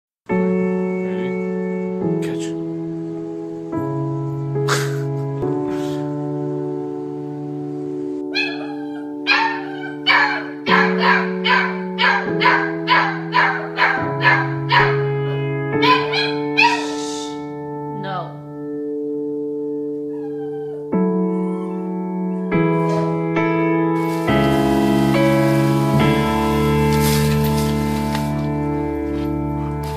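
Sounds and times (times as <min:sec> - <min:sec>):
piano background music: 0:00.3 - 0:29.9
dog barking: 0:08.3 - 0:15.0, 0:15.8 - 0:17.0
dog whining: 0:08.3 - 0:15.0, 0:15.8 - 0:17.0, 0:20.0 - 0:23.3.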